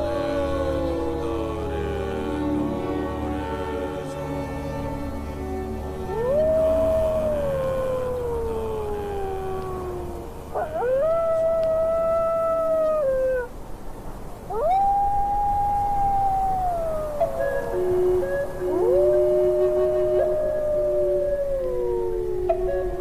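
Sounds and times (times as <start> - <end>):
wolf howling: 0.0 - 13.5, 14.5 - 23.0.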